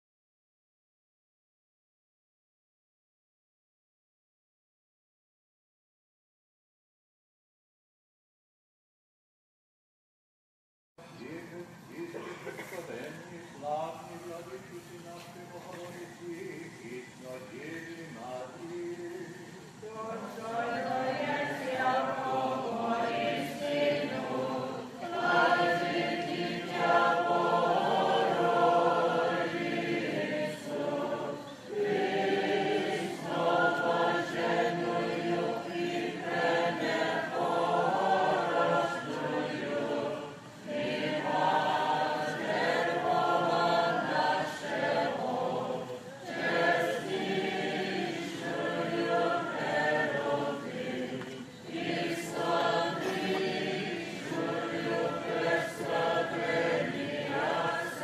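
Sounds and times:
choir singing a cappella: 13.6 - 58.0.

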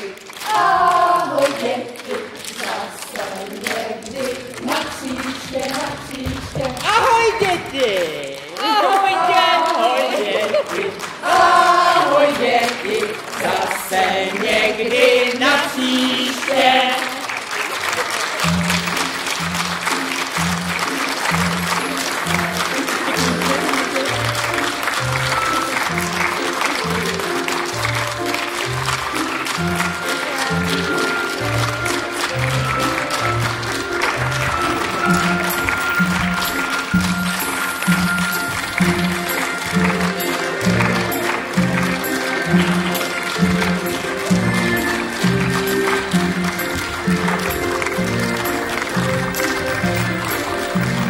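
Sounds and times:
voices singing together: 0.0 - 7.0, 8.6 - 17.4
audience applause: 0.0 - 51.0.

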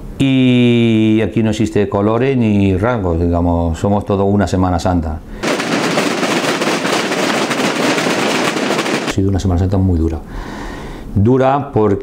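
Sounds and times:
snare drums rattling: 5.4 - 9.2.

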